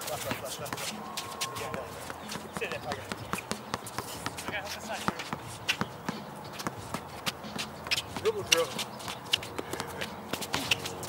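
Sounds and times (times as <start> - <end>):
shuffling footsteps: 0.0 - 11.0
basketball bouncing on hard court: 1.4 - 10.8.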